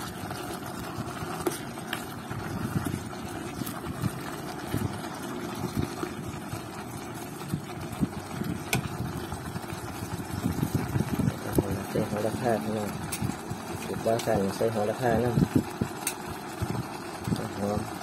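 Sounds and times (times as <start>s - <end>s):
spatula knocking and scraping pot: 1.3s - 2.0s.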